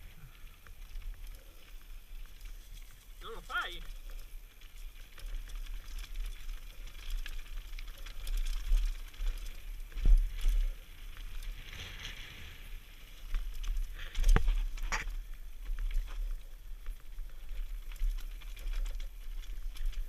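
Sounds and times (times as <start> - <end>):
bike rattling: 0.0 - 20.0
tyres crunching over stones: 0.0 - 20.0.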